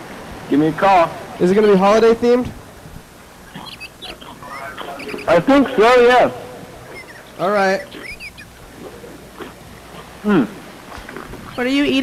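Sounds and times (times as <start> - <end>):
chirping crackles: 3.2 - 10.2, 10.8 - 12.0.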